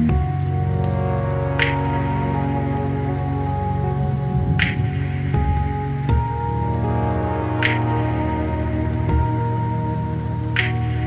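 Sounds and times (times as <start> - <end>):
slow ambient music: 0.0 - 11.0.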